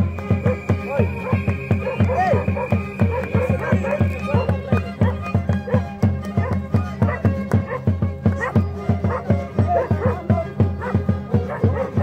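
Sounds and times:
drum steady beat: 0:00.0 - 0:12.0
strummed guitars: 0:00.0 - 0:12.0.

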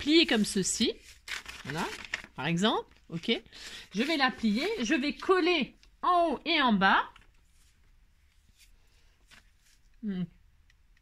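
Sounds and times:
faint handling sounds: 0:07.1 - 0:10.0.

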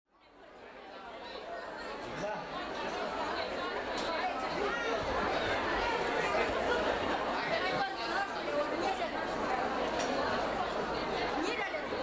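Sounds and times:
chatter of many people: 0:00.1 - 0:12.0.

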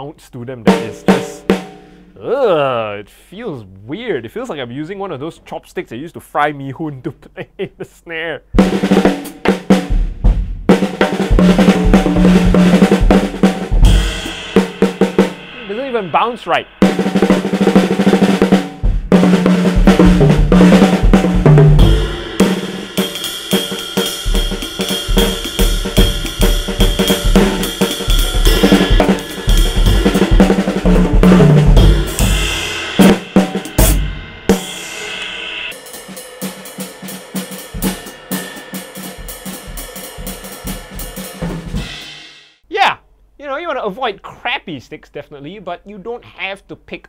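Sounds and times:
acoustic drum kit playing: 0:00.6 - 0:02.9, 0:08.4 - 0:43.0.

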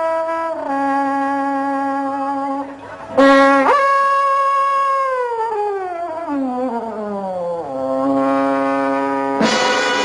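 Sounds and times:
trombone glissando: 0:00.0 - 0:05.0, 0:07.6 - 0:10.0.

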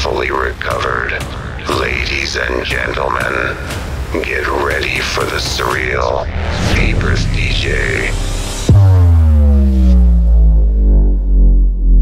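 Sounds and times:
busy electronic music: 0:00.0 - 0:12.0
heavy low rumble: 0:00.0 - 0:12.0
deep impact with falling pitch: 0:06.3 - 0:12.0.

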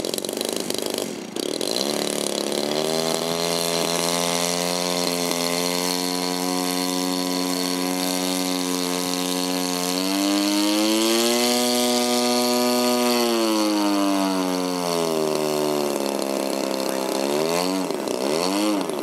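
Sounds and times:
model plane engine overhead: 0:00.0 - 0:19.0.

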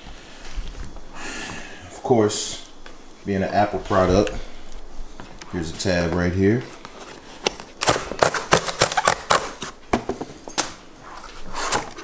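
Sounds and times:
cardboard ripping and crackling: 0:06.8 - 0:09.8.

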